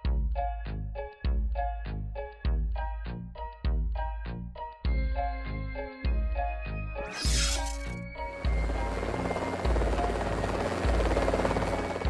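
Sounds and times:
propeller plane engine buzz: 8.4s - 12.0s.

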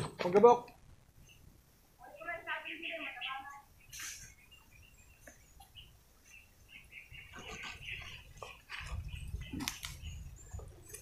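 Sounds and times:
rustling leaves and branches: 1.0s - 11.0s.

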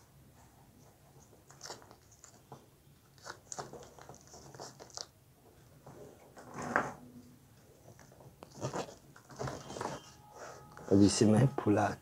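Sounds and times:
plastic balloon crinkling: 1.2s - 6.8s, 7.7s - 11.0s.

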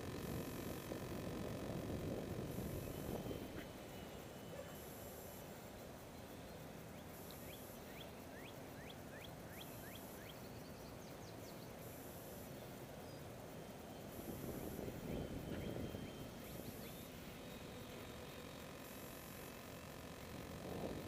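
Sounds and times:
wind rumbling on microphone: 0.0s - 3.9s, 14.0s - 17.1s, 20.3s - 21.0s
low outdoor hum: 0.0s - 21.0s
bird chirping: 6.1s - 19.4s.

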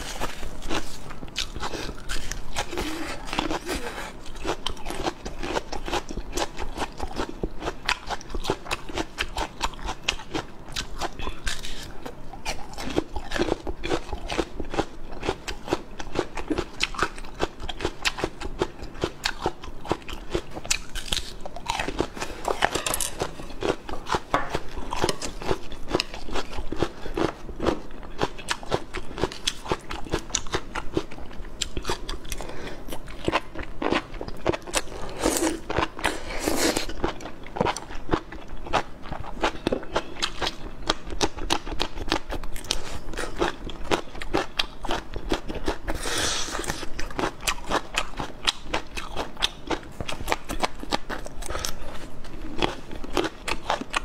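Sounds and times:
crunching and wet chewing: 0.0s - 54.0s.

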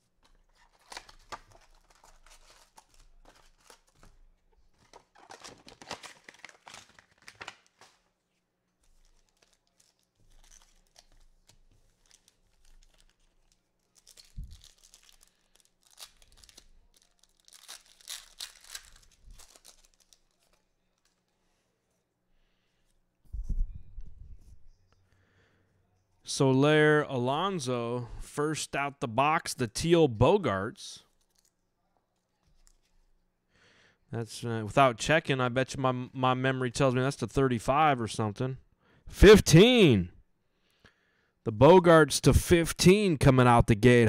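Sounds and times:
wrappers tearing and crinkling: 0.2s - 4.1s, 4.8s - 8.1s, 8.8s - 21.3s.

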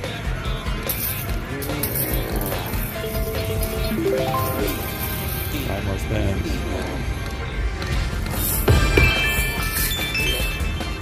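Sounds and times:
short melodic runs: 3.9s - 5.2s
slot machine game music: 3.9s - 5.5s.

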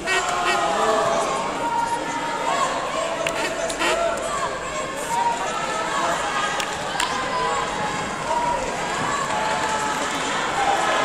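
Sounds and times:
steady background noise: 0.0s - 11.0s
voices echoing in a hall: 0.0s - 11.0s.

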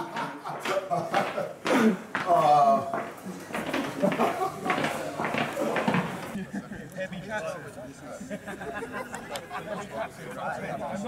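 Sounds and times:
men talking indistinctly: 0.0s - 3.1s, 4.9s - 11.0s.

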